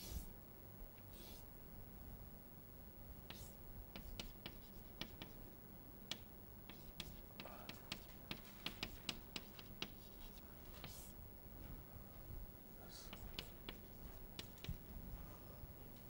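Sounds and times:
chalk scratches: 3.3s - 5.4s, 6.7s - 11.1s
chalk tapping on blackboard: 3.3s - 5.4s, 6.1s - 11.1s, 13.1s - 14.8s.

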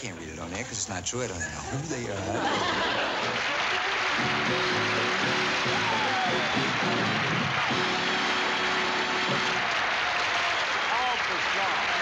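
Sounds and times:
audience applauding: 2.4s - 12.0s.

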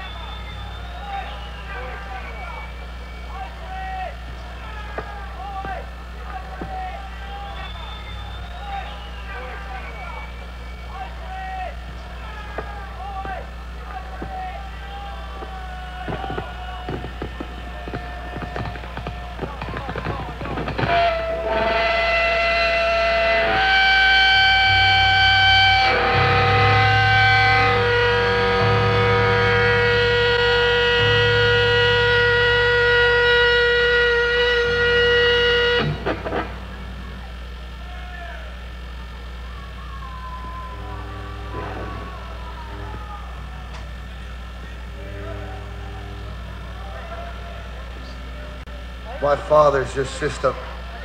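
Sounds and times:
amplifier hum: 0.0s - 51.0s
faint voices: 0.0s - 51.0s
electric guitar chords ringing: 20.6s - 37.8s, 40.2s - 49.8s.

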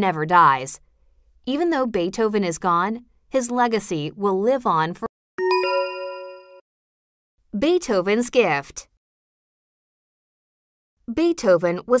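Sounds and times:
bell-like ding chime: 5.4s - 6.6s.

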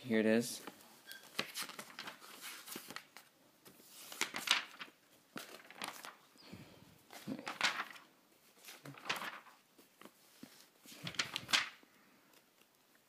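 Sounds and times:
paper pages rustling: 0.6s - 6.3s, 7.0s - 12.9s.

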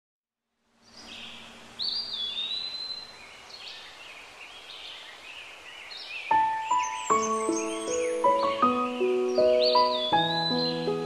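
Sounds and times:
birds chirping: 0.8s - 11.0s.

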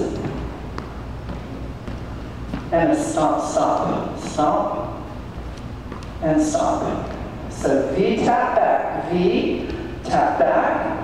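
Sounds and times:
sneakers tapping on plastic step: 0.0s - 2.8s, 5.4s - 6.2s, 6.9s - 7.8s
low room hum: 0.0s - 11.0s.

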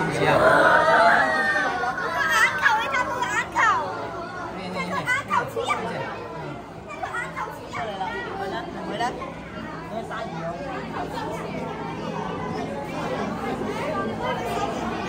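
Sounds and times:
indistinct chatter of many people: 0.0s - 15.0s
children's high-pitched voices: 0.3s - 8.5s, 9.3s - 15.0s.

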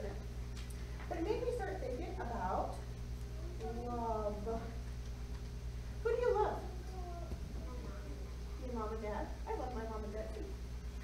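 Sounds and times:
child's high-pitched vocal sound: 6.7s - 8.1s.

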